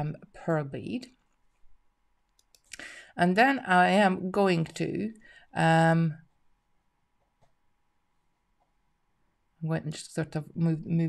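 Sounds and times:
faint small clicks: 2.2 - 2.9.

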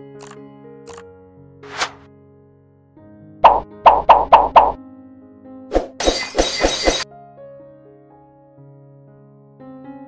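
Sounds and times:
background music: 0.0 - 7.2.

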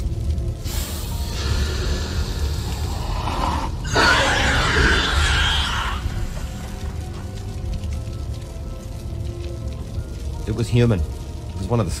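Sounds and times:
low rumbling drone: 0.0 - 10.5
rising hiss: 0.6 - 6.7.

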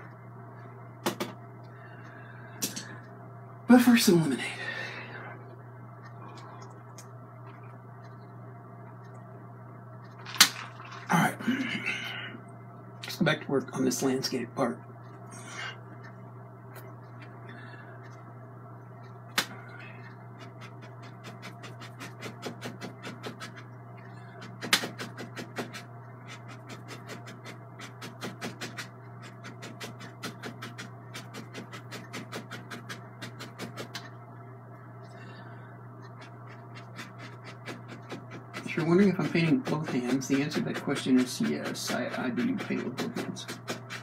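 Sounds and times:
steady low hum: 0.0 - 44.0
brush dabbing on canvas: 36.1 - 44.0.

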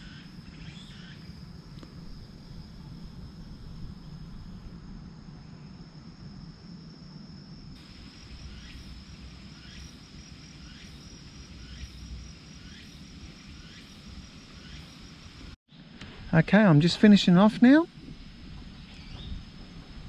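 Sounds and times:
crickets trilling: 0.0 - 20.0
low outdoor rumble: 0.0 - 20.0.

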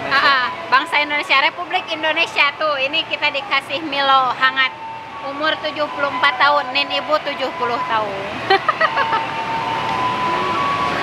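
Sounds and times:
continuous thin whine: 0.0 - 11.0.

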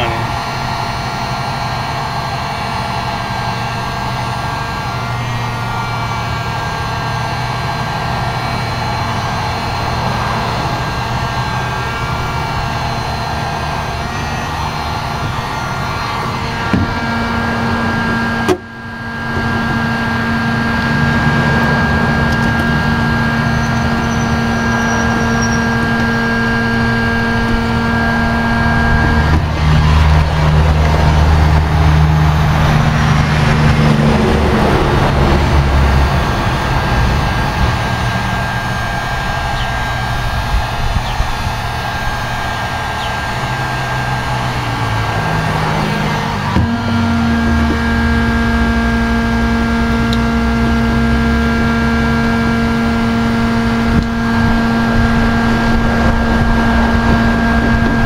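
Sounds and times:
heat gun fan humming: 0.0 - 58.0.

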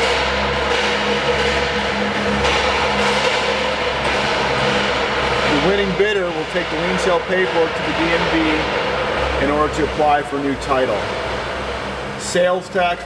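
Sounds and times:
background hum and hiss: 0.0 - 13.0
constant mid-pitched tone: 0.0 - 13.0.

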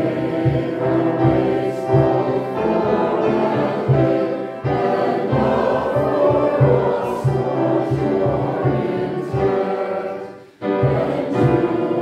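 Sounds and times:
congregation singing a hymn: 0.0 - 12.0
keyboard accompaniment: 0.0 - 12.0.

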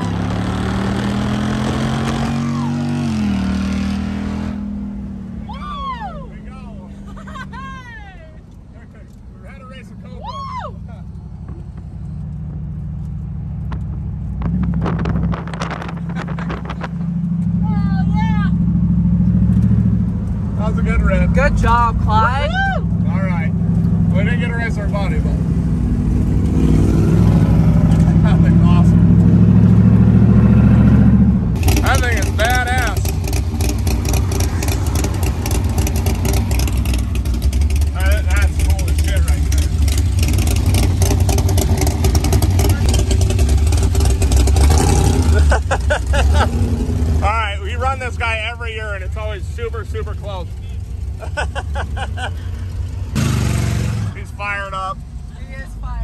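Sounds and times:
voices: 31.7 - 33.1, 54.1 - 56.0.

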